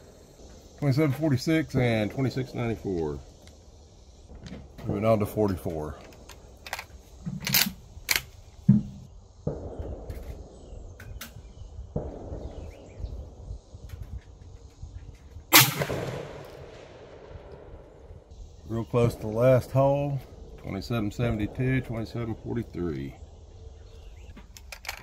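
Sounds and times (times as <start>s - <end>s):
loud rifle shot: 9.4s - 10.8s, 11.4s - 13.1s, 15.5s - 18.0s.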